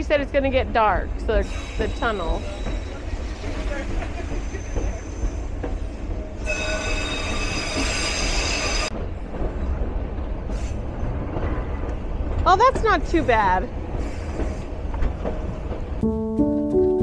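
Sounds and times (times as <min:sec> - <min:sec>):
train rumbling: 0:00.0 - 0:17.0
steel wheels squealing on rails: 0:01.3 - 0:09.0, 0:13.1 - 0:14.9.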